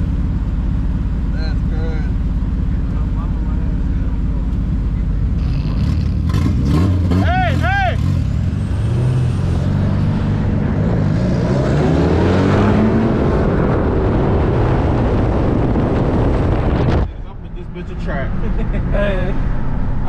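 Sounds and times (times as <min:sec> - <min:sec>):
car engines accelerating: 0:00.0 - 0:20.0
wind on microphone: 0:12.1 - 0:17.2.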